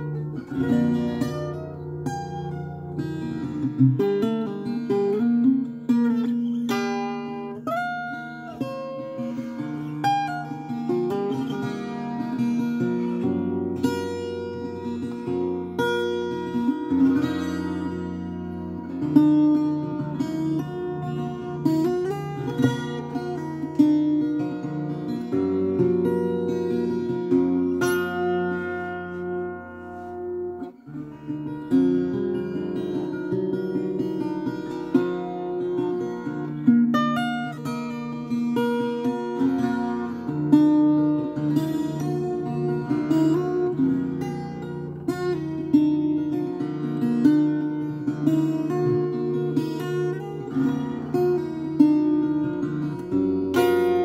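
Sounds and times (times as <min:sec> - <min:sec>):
twelve-string acoustic guitar: 0:00.0 - 0:54.0.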